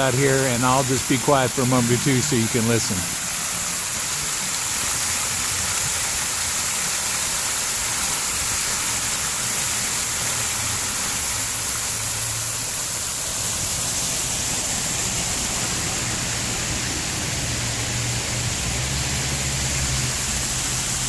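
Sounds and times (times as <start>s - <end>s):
water rushing over dam onto rocks: 0.0s - 21.0s.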